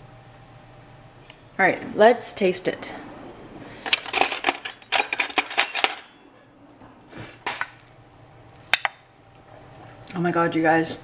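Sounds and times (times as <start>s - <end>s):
cutlery clattering in drawer: 3.9s - 6.5s.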